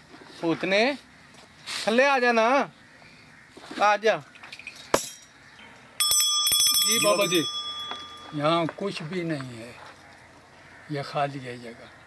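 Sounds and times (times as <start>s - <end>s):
small metal bell ringing: 6.0s - 9.0s.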